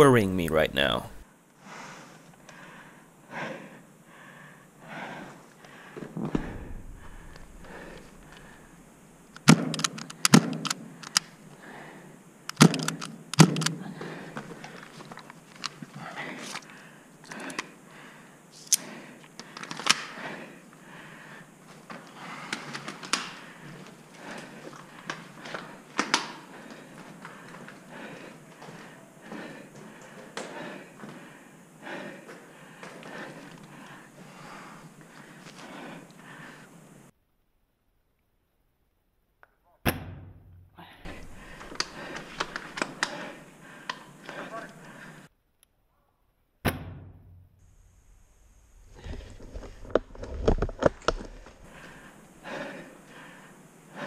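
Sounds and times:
sharp knocks and thunks: 39.9s - 40.6s, 46.6s - 47.4s.

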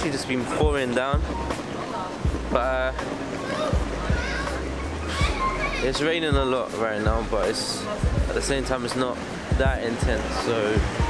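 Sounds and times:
background music with deep bass: 0.0s - 11.0s
faint voices of people: 0.0s - 11.0s.

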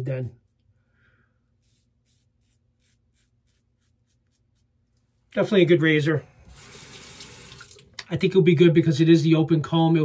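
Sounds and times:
razor scraping stubble: 1.5s - 5.0s.

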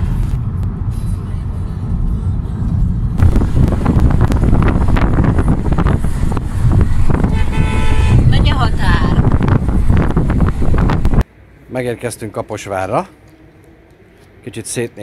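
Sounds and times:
car road and engine noise: 0.0s - 15.0s
car horn toot: 7.1s - 8.6s.

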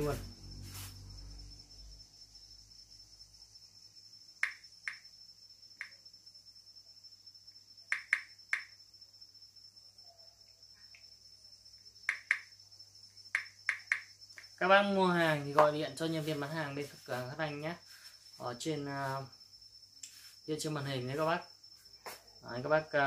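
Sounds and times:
sharp clicks: 4.4s - 5.0s, 7.9s - 8.8s, 12.0s - 12.5s, 13.3s - 14.5s.

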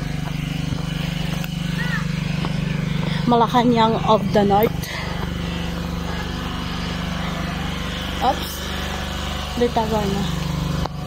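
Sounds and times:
engine running steadily: 0.0s - 11.0s.

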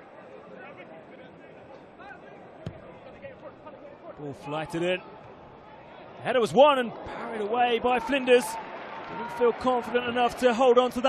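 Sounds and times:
football being kicked: 2.6s - 2.9s.

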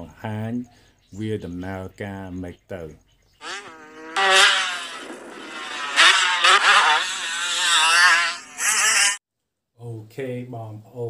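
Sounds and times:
small petrol engine revving: 3.4s - 9.2s.

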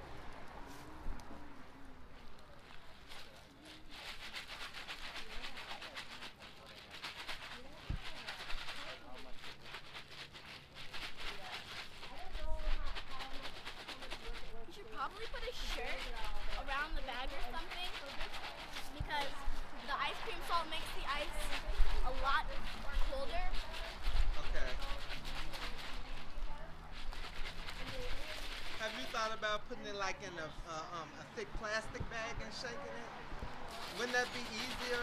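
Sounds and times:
faint indistinct voices: 0.0s - 35.0s.

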